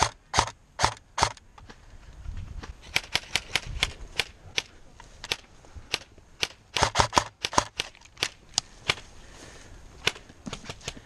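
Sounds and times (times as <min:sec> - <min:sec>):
airsoft rifle shots: 0:00.0 - 0:01.4, 0:02.8 - 0:09.0.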